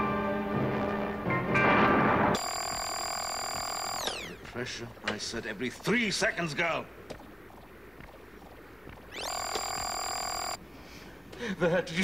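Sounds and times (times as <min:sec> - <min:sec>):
high electronic tone sliding down: 0:02.4 - 0:04.5, 0:07.5 - 0:10.6.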